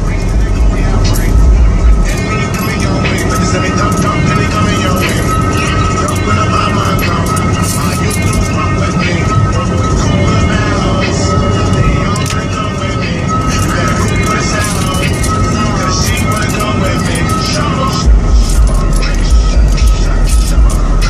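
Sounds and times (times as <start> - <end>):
car road and engine rumble: 0.0 - 21.0
music with a voice: 0.0 - 21.0.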